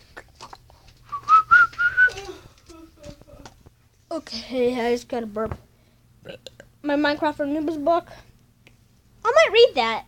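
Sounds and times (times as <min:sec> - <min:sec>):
person whistling short notes: 0:01.1 - 0:02.2.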